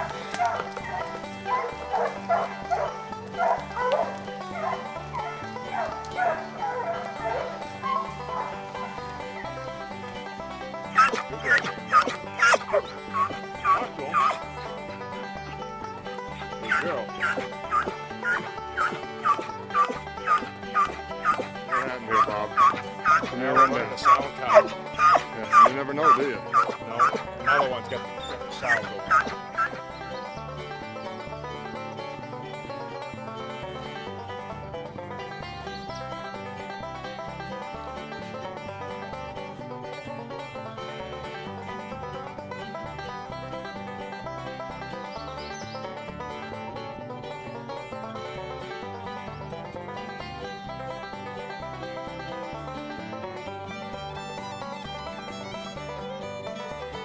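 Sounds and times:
hound barking: 0.0s - 9.0s, 10.9s - 14.5s, 16.6s - 29.8s
background music: 0.0s - 57.0s.

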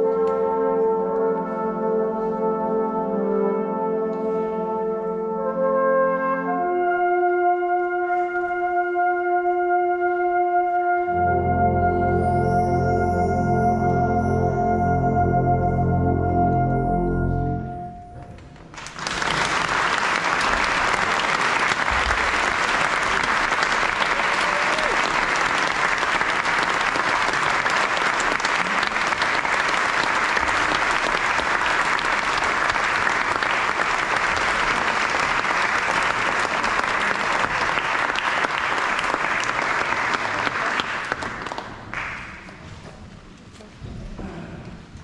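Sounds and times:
brass band chord: 0.0s - 18.2s
audience applause: 18.7s - 42.7s.

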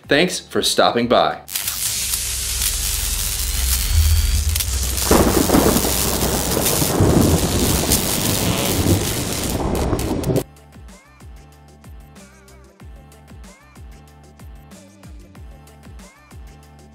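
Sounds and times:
rain hiss: 1.5s - 10.4s
deep thunder rumble: 1.9s - 10.4s.

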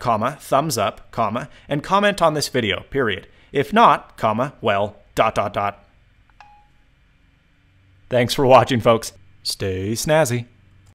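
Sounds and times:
short two-note beep: 6.4s - 6.8s.

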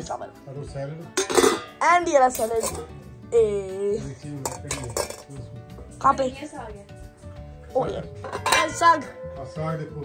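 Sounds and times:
steel plates and bowls clattering: 1.2s - 2.9s, 4.4s - 5.4s, 8.2s - 9.0s.

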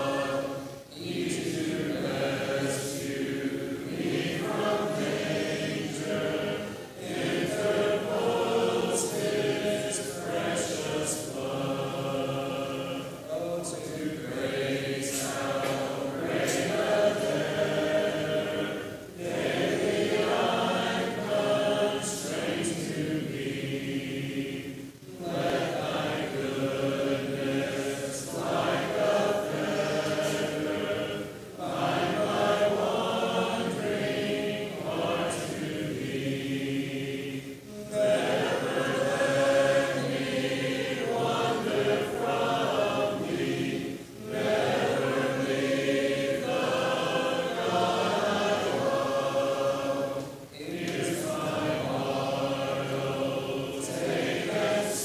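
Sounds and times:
congregation singing a hymn: 0.0s - 55.0s.

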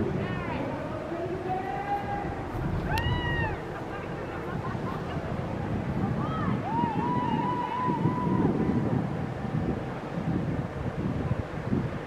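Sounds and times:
steady low rumble: 0.0s - 7.3s.

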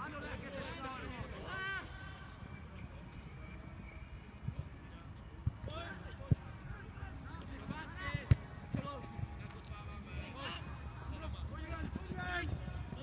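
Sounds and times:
football kick thuds: 8.2s - 8.9s.

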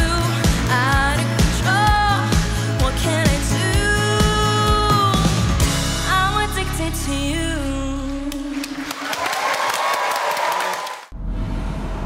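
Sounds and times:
clapping and cheering: 6.5s - 11.1s
deep rumbling logo music: 11.1s - 12.0s.

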